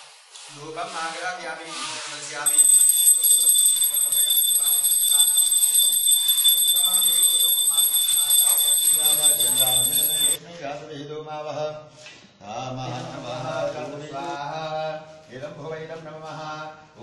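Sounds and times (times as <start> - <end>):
small hand bell ringing: 2.5 - 10.4.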